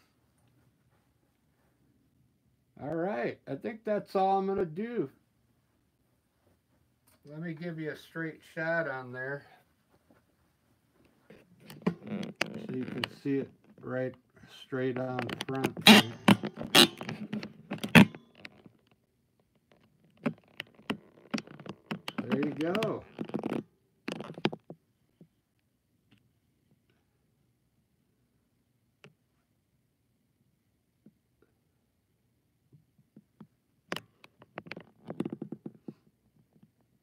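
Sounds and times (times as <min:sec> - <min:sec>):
sharp clicks and taps: 0:20.2 - 0:24.5.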